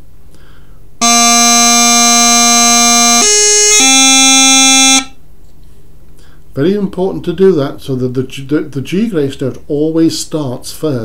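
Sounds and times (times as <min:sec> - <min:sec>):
bagpipe practice chanter: 0:01.0 - 0:05.2.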